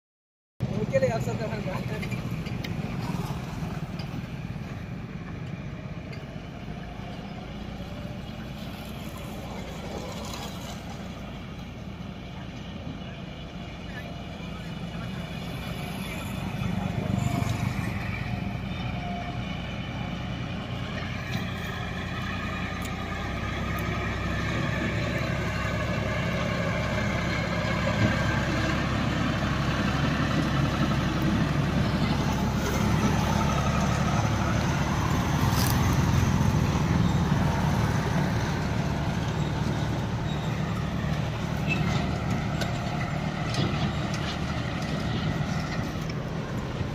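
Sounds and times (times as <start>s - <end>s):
tractor diesel engine: 0.6s - 46.9s
motorcycle passing: 1.7s - 4.4s, 8.4s - 11.4s, 14.9s - 46.9s.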